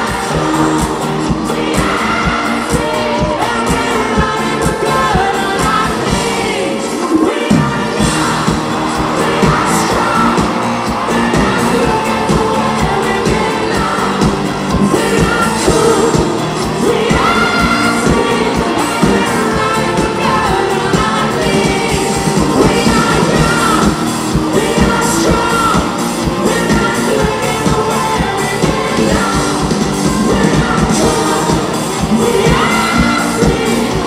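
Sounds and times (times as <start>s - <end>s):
drums: 0.0s - 34.0s
electric bass: 0.0s - 34.0s
man singing: 3.2s - 34.0s.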